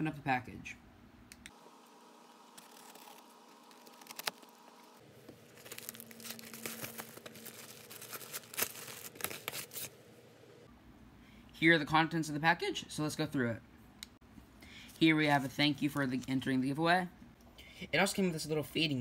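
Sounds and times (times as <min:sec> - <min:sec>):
cardboard package tearing: 0:02.5 - 0:04.8, 0:05.5 - 0:09.9
wrapping crinkling: 0:02.5 - 0:09.9.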